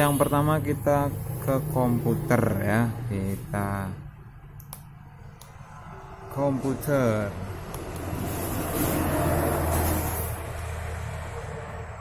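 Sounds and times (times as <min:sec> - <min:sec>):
traffic-like rumble: 0:00.0 - 0:12.0.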